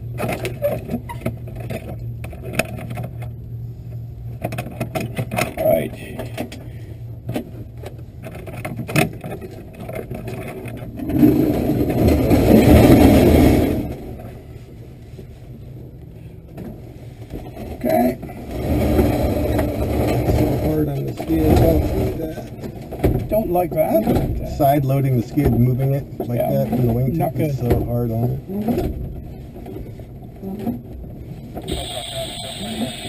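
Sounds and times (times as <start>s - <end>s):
rushing rumble: 1.4s - 33.0s
airframe knocks and rattles: 17.4s - 24.8s
plane engine drone: 28.5s - 33.0s.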